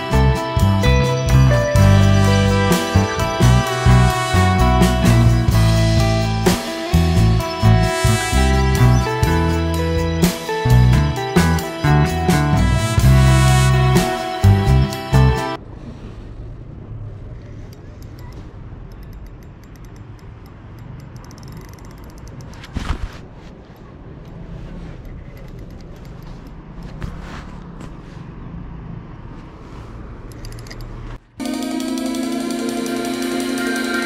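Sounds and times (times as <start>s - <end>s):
music: 0.0s - 15.6s, 31.4s - 34.0s
low rumble of handling and wind: 15.6s - 31.4s
fishing reel ticking: 18.9s - 22.6s.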